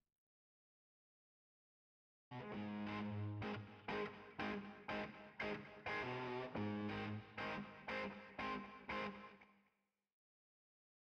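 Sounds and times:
guitar chords with effects: 2.3s - 9.5s.

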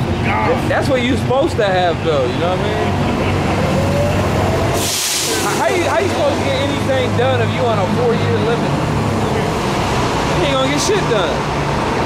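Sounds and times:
heavy vehicle engine rumble: 0.0s - 12.0s
short loud hiss: 4.8s - 5.6s.

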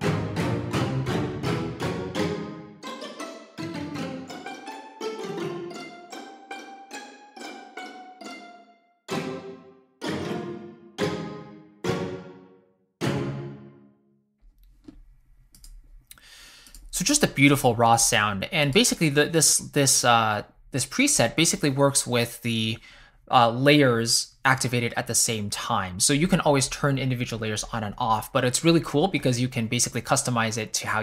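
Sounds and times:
orchestral string stabs: 0.0s - 13.8s.

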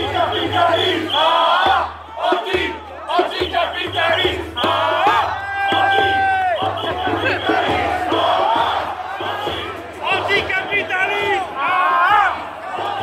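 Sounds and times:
crowd shouting and chanting: 0.0s - 13.0s.

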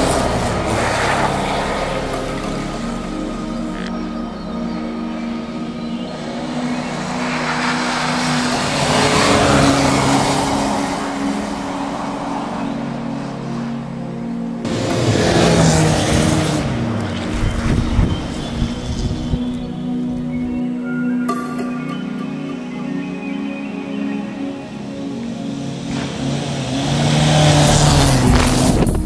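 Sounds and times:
rally car engine revving: 0.0s - 20.0s, 25.2s - 29.0s
background music: 0.0s - 29.0s.

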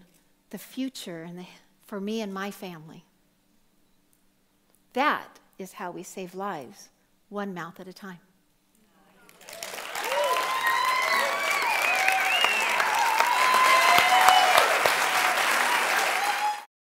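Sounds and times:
audience applauding: 9.2s - 16.7s.

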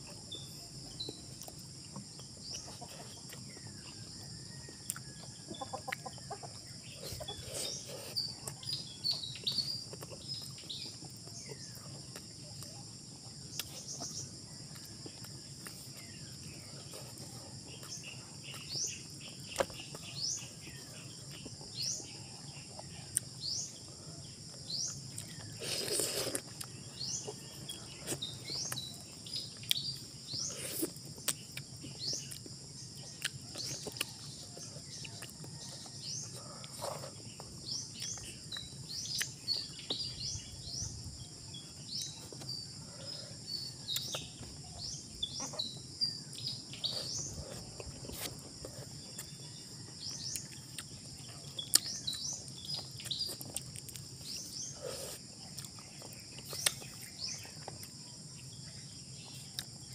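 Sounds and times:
bird chirps: 2.2s - 59.9s
chewing and lip-smacking: 4.8s - 8.7s, 9.5s - 12.8s, 13.5s - 21.6s, 24.9s - 40.0s, 43.8s - 44.3s, 46.2s - 49.4s, 50.2s - 58.1s, 59.3s - 59.9s.

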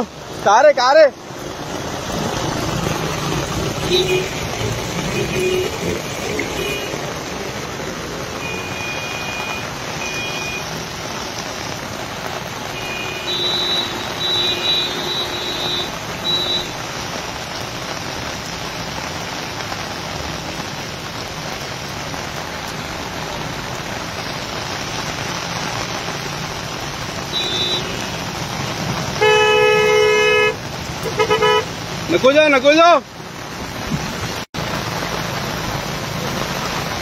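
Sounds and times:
heavy rain on wet street: 0.0s - 37.0s
vehicle horns honking: 3.8s - 7.0s, 8.4s - 10.8s, 12.6s - 16.8s, 27.2s - 28.4s, 29.1s - 31.8s.

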